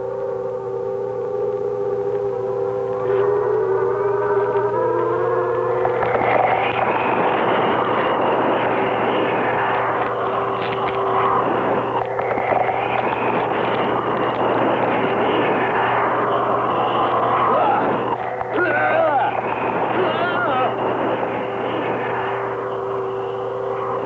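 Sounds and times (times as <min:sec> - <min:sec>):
long held tones: 0:00.0 - 0:24.0
rushing roaring noise: 0:00.0 - 0:24.0.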